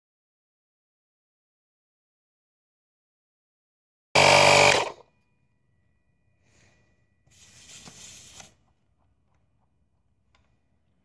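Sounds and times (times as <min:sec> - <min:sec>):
tyre inflator compressor humming: 0:04.2 - 0:05.0.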